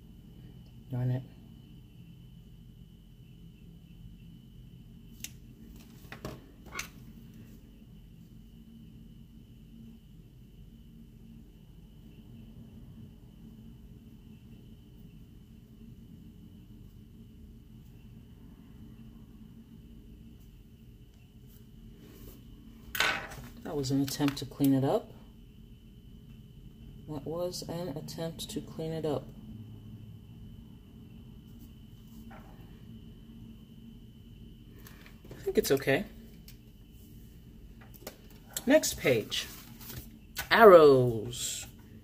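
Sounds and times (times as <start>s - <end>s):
faint high whine: 0.0s - 42.0s
steady low hum: 0.0s - 42.0s.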